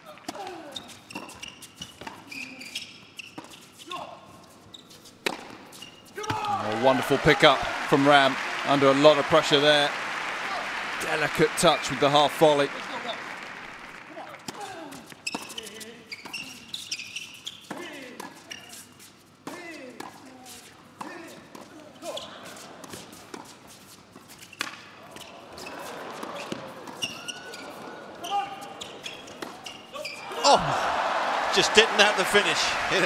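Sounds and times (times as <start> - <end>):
shoe squeaks: 0.6 - 6.3, 15.1 - 19.3, 22.0 - 22.7, 23.4 - 30.3
players calling: 6.2 - 15.8, 25.0 - 33.0
crowd applause and cheering: 6.4 - 14.2, 30.2 - 33.0.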